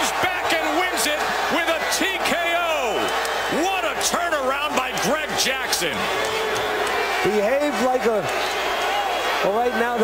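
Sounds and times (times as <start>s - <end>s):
man shouting excited commentary: 0.0s - 5.9s.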